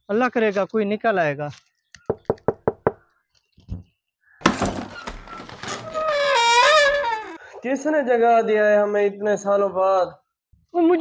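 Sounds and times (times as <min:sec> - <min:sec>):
knocks on a door: 0:02.1 - 0:03.0.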